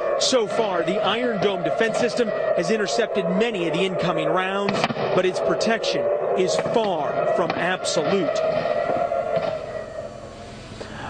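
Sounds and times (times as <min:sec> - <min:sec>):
air-raid siren steady tone: 0:00.0 - 0:11.0.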